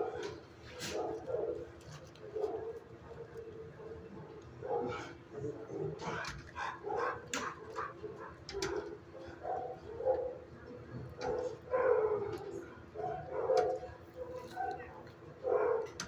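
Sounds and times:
dogs barking: 0.0 - 16.0.

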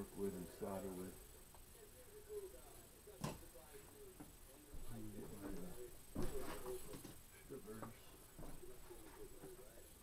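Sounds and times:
faint indistinct speech: 0.0 - 10.0.

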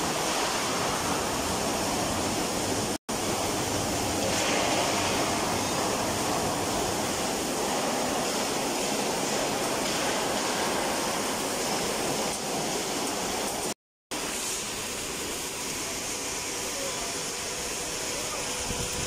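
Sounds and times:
factory floor noise: 0.0 - 19.0
welding arc hissing: 0.0 - 19.0.

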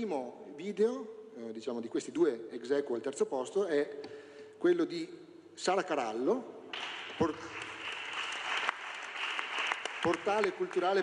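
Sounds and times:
crowd clapping: 6.7 - 11.0.

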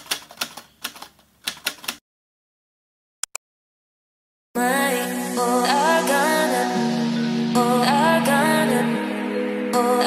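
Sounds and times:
typewriter key clacks: 0.0 - 2.0.

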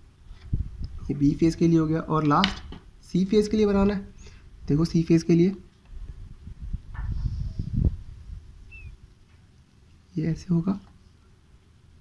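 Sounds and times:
faint high chirp: 8.6 - 9.0.

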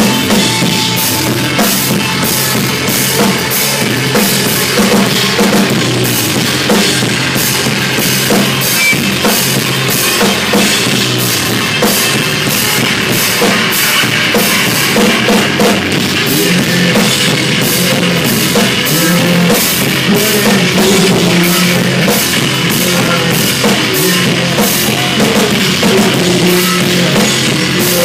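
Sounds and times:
drum kit cymbal and drum hits: 0.0 - 28.0
rock band playing live: 0.0 - 28.0.

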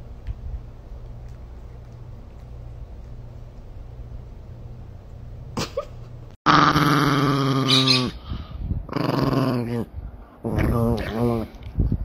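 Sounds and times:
faint low hum: 0.0 - 6.4
small dog growling: 8.9 - 9.9.

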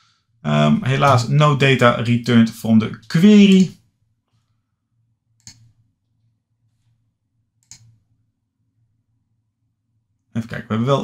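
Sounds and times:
computer mouse clicks: 5.4 - 7.0, 7.6 - 8.0.

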